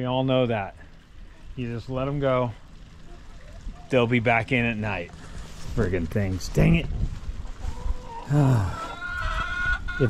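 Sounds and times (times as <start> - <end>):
chicken calling: 7.6 - 10.0
man groaning: 8.3 - 8.9.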